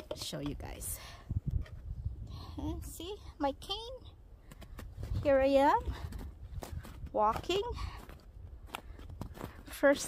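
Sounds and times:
footsteps crunching in snow: 4.8s - 10.0s.

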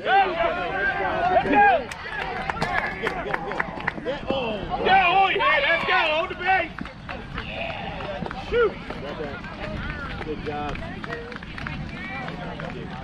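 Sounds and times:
people calling and chattering: 0.0s - 13.0s.

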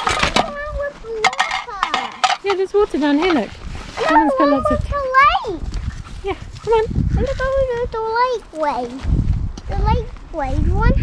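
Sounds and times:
children calling and talking: 0.0s - 11.0s.

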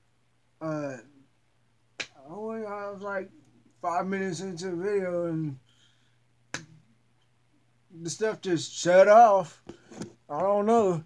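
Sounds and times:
finger snap: 2.0s - 2.2s, 6.5s - 6.8s.

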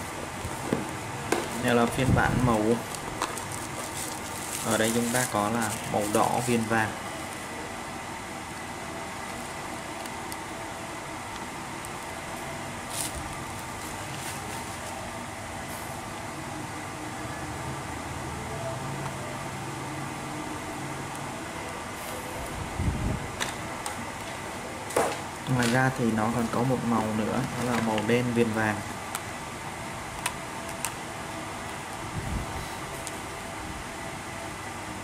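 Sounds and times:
fan running: 0.0s - 35.0s.

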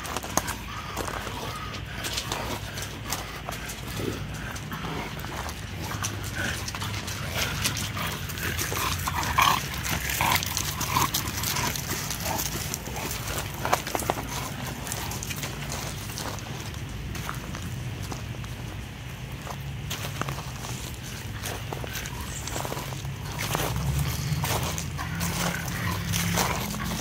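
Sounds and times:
paws scuffling on gravel: 0.0s - 27.0s.

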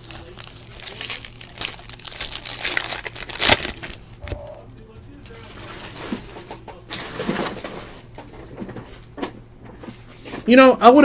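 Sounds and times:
man mumbling: 4.2s - 5.0s.

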